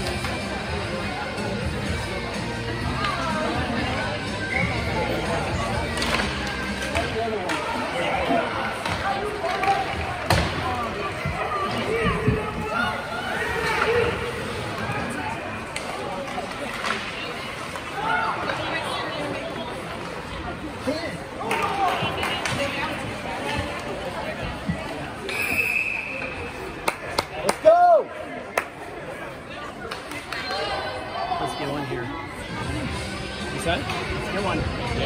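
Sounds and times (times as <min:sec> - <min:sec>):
spectators talking: 0:00.0 - 0:35.0
sticks and puck clacking on ice: 0:05.8 - 0:07.9, 0:08.6 - 0:11.0, 0:13.4 - 0:18.7, 0:21.4 - 0:24.0
referee's whistle: 0:25.3 - 0:26.4.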